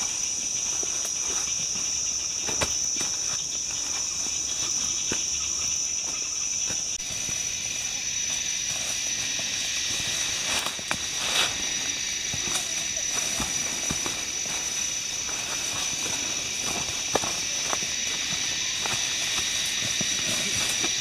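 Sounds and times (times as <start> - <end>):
forest insects droning: 0.0 - 21.0
footsteps crunching through dry leaves: 2.7 - 21.0.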